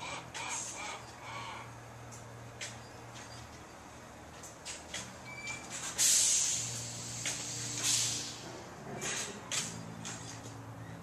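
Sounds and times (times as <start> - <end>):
sudden hissing burst: 6.0 - 8.5.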